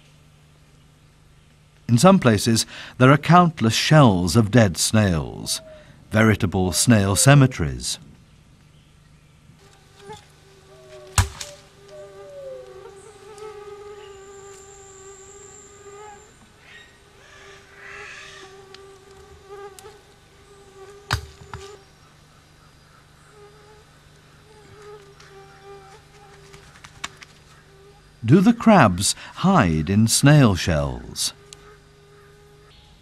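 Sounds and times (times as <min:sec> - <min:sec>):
flying insect buzzing: 0:09.6 - 0:28.3, 0:28.9 - 0:33.0.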